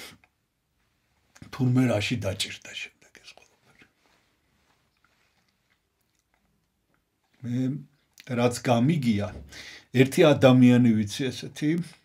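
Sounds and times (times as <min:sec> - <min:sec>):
man speaking: 0:01.4 - 0:03.5, 0:07.4 - 0:12.0
faint mouth clicks: 0:04.9 - 0:07.4
breaths: 0:09.4 - 0:10.0.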